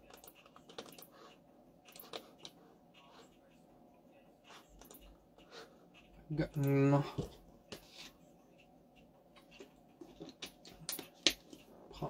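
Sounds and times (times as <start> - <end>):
mouse and keyboard clicks: 0.0 - 1.1, 1.8 - 3.1.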